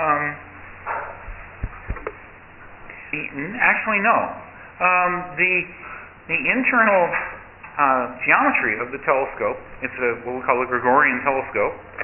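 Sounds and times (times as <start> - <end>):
low room hum: 0.0 - 12.0
soft low thumps: 1.2 - 2.5.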